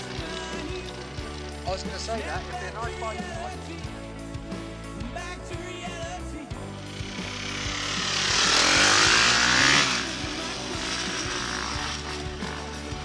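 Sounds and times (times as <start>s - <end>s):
dirt bikes riding past: 0.0s - 3.8s, 6.6s - 13.0s
background music: 0.0s - 13.0s.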